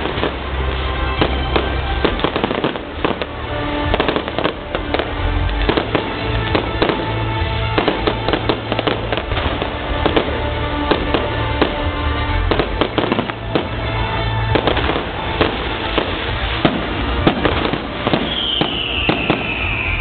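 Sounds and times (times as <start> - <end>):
fireworks bursting with crackling: 0.0 - 20.0.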